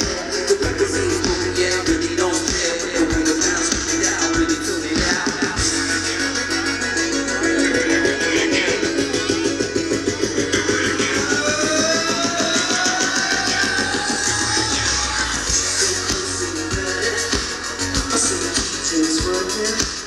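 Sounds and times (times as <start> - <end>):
live synth-pop band: 0.0 - 20.0
tone rising in pitch: 5.6 - 15.9.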